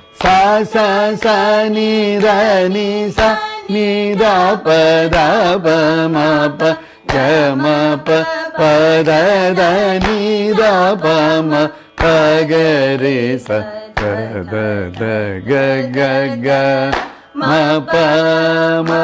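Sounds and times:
soft hand claps: 0:00.2 - 0:01.6, 0:02.2 - 0:02.5, 0:03.1 - 0:03.5, 0:07.1 - 0:08.3, 0:09.0 - 0:11.2, 0:11.9 - 0:14.4, 0:16.8 - 0:17.3, 0:18.8 - 0:19.0.

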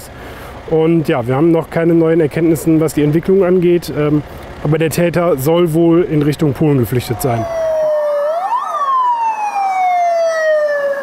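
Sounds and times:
police siren wailing: 0:07.0 - 0:11.0.

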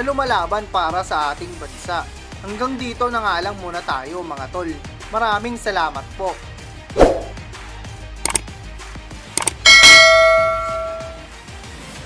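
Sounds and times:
faint background music: 0:00.0 - 0:08.6
quick clicks: 0:09.4 - 0:09.6
notification bell ding: 0:09.7 - 0:11.3.

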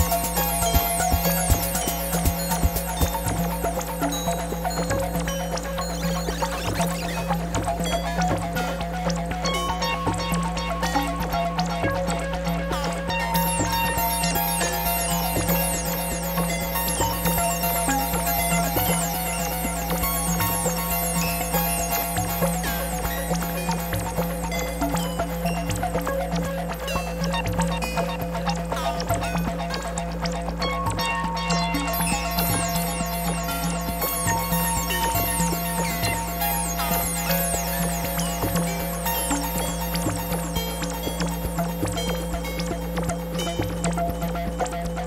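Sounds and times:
electronic synthesizer music: 0:00.0 - 0:04.9.

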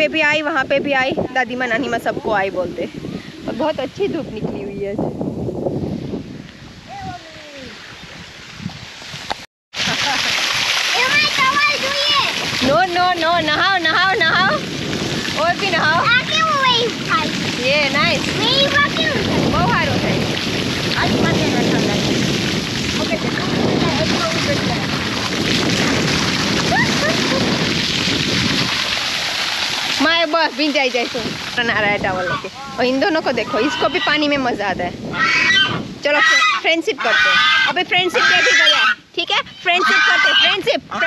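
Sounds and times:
water gushing and splashing: 0:05.7 - 0:41.0
child crying high-pitched: 0:06.9 - 0:07.8.

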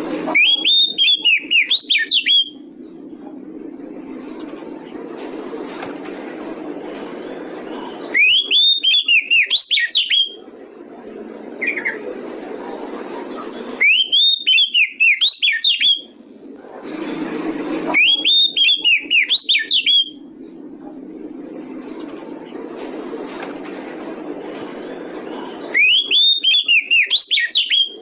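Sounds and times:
low background hum: 0:00.0 - 0:28.0
bird singing whistled notes: 0:00.4 - 0:02.6, 0:08.1 - 0:10.4, 0:13.8 - 0:16.2, 0:18.0 - 0:20.2, 0:25.7 - 0:28.0
soft bird call: 0:13.3 - 0:16.2, 0:17.9 - 0:20.2, 0:24.8 - 0:28.0.

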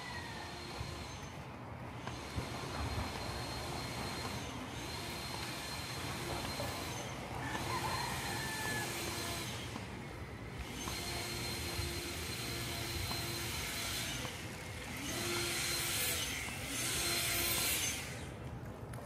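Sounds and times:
steady street hiss: 0:00.0 - 0:19.0.

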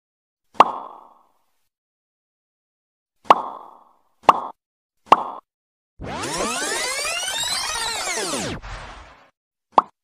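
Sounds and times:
electronic sweeping transition effect: 0:06.0 - 0:09.3.

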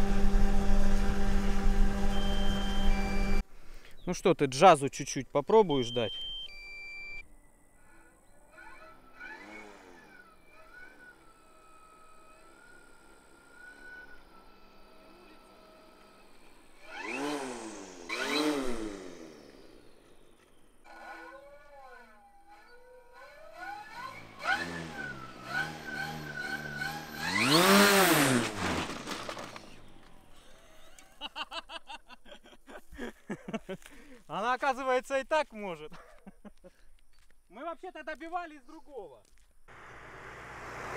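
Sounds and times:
electric propellers buzzing: 0:00.0 - 0:03.4, 0:07.7 - 0:30.3.

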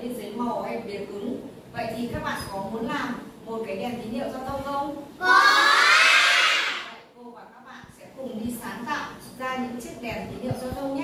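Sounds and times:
children calling out together: 0:05.2 - 0:07.0.

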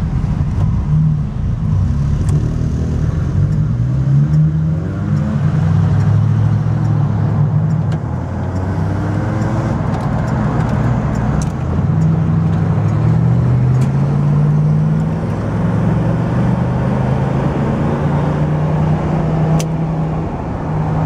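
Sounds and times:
car engine from inside cabin: 0:00.0 - 0:21.0.

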